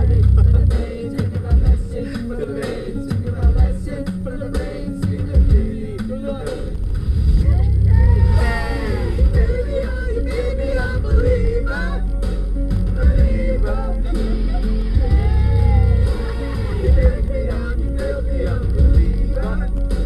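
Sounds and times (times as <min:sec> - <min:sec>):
people singing along: 0:00.0 - 0:06.9, 0:07.5 - 0:20.0
karaoke music with heavy bass: 0:00.0 - 0:20.0.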